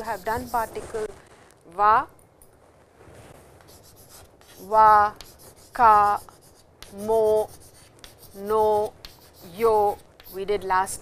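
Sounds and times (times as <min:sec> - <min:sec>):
chalk scratching on chalkboard: 0:00.0 - 0:01.2, 0:03.6 - 0:11.0.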